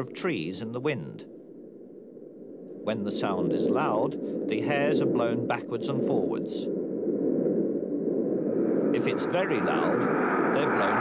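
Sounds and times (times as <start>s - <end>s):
wind blowing through trees: 0.0s - 11.0s.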